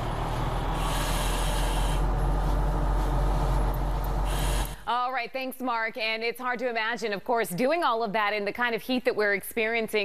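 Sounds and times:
steady low rumble: 0:00.0 - 0:04.9
breathing apparatus regulator hiss: 0:00.6 - 0:04.9.

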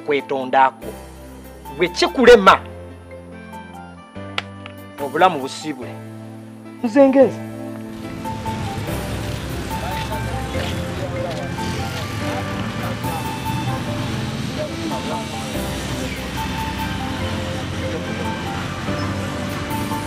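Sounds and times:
background music with voice: 0:00.0 - 0:20.0
street traffic: 0:00.8 - 0:20.0.

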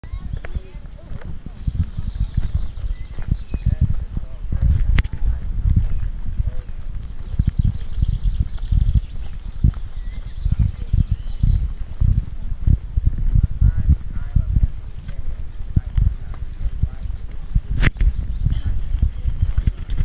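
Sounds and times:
people talking: 0:00.0 - 0:09.0, 0:10.0 - 0:20.0.

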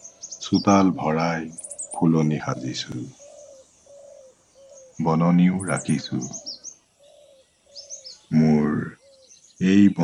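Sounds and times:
faint high chirps: 0:00.0 - 0:10.0
bird cooing softly: 0:00.4 - 0:10.0.

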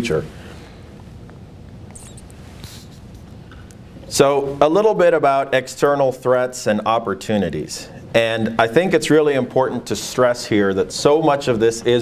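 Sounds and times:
steady low hum: 0:00.0 - 0:12.0
faint brief rustles: 0:01.9 - 0:03.7.

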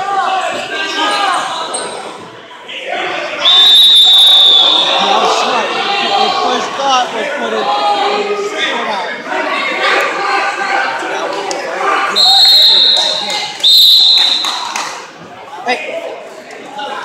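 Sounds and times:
spectators shouting: 0:00.0 - 0:14.8.

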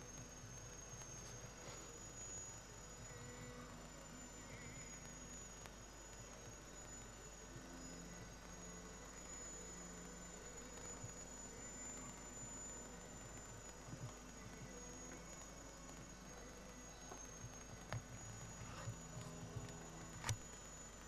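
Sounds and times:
faint tape hiss: 0:00.0 - 0:21.0
high-pitched whine: 0:00.0 - 0:21.0.

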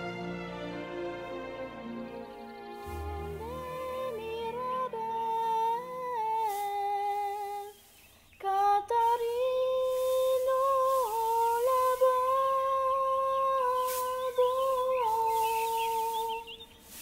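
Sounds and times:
person humming a slow melody: 0:02.7 - 0:07.8.

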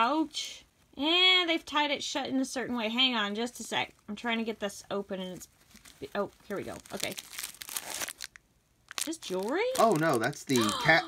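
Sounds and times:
plastic wrapping crinkling: 0:05.1 - 0:10.8.

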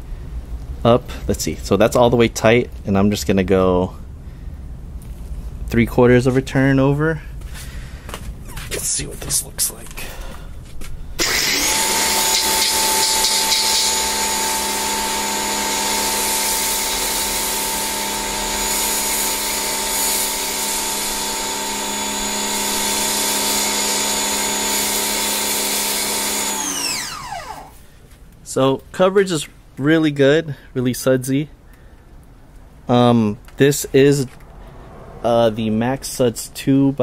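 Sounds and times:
pressure washer whine: 0:11.2 - 0:27.8
foam spray hissing: 0:12.1 - 0:26.4.

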